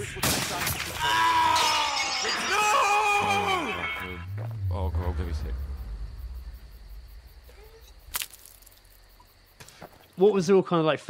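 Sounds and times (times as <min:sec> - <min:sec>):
low hum: 0:04.0 - 0:09.2.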